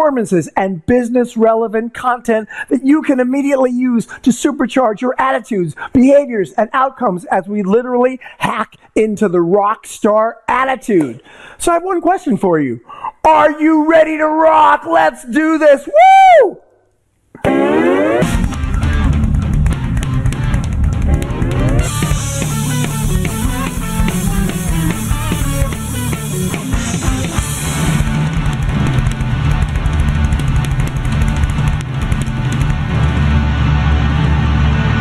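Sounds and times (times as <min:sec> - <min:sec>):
short rising sweep: 0:17.4 - 0:18.7, 0:21.1 - 0:28.0
drum kit playing rock groove: 0:17.4 - 0:33.0
rock backing music: 0:17.4 - 0:35.0.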